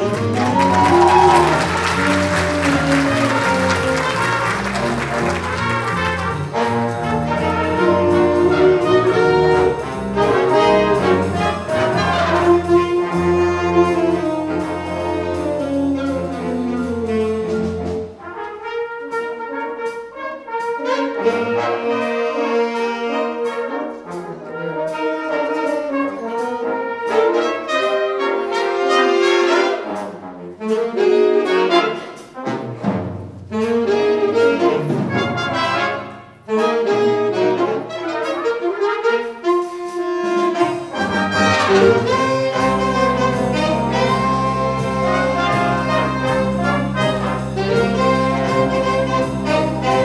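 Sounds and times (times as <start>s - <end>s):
jazz band playing swing: 0.0s - 50.0s.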